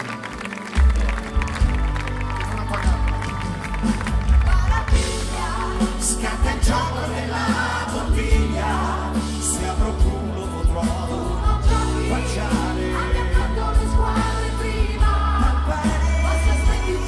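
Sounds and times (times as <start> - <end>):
crowd cheering: 0.0 - 4.9
bass and drums: 0.0 - 17.0
rock band playing live: 0.0 - 17.0.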